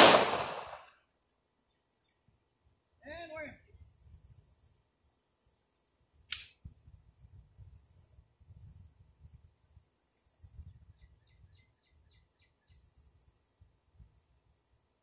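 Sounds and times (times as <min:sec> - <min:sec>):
distant pistol shot: 0:00.0 - 0:00.9
faint quick ticks: 0:06.3 - 0:06.6.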